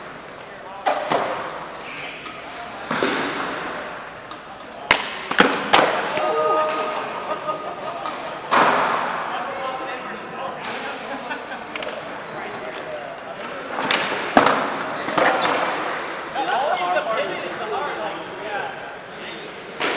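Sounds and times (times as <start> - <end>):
crowd chatter: 0.0 - 19.9.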